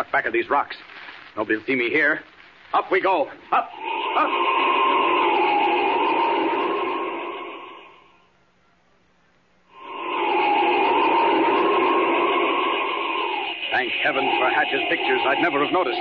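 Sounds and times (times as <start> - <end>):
whistling wind whoosh: 3.8 - 8.1, 9.8 - 16.0.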